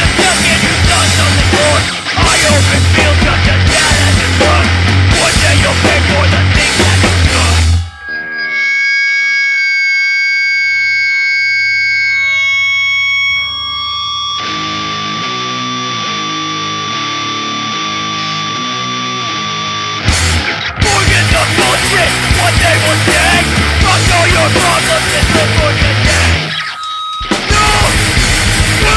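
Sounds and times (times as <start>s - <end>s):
hardcore punk band music: 0.0s - 10.0s, 13.2s - 28.9s
distorted electric guitar notes: 0.0s - 28.9s
high ringing tone: 7.4s - 20.0s, 26.1s - 28.9s.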